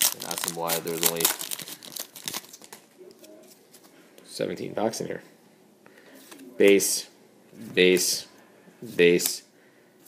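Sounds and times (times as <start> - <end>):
foil tearing open: 0.0 - 2.8
foil wrapper crinkling: 0.0 - 2.9.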